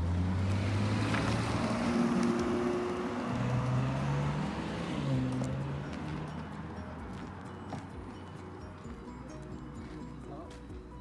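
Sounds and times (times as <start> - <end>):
car driving past: 0.0 - 7.7
slow low background music: 0.1 - 11.0.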